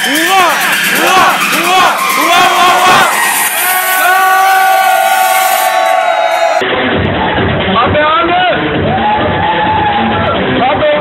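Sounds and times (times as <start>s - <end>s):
young people whooping and yelling: 0.2s - 6.6s, 8.8s - 10.4s.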